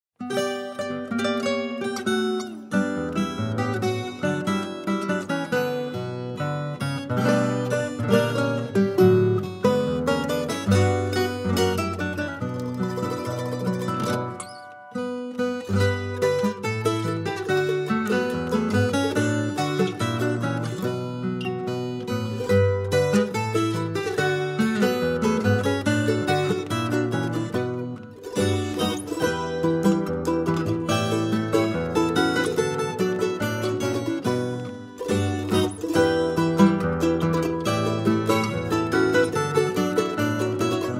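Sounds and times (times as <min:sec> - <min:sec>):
plucked acoustic guitars: 0:00.2 - 0:40.9
small high-pitched stringed instrument: 0:00.2 - 0:40.9.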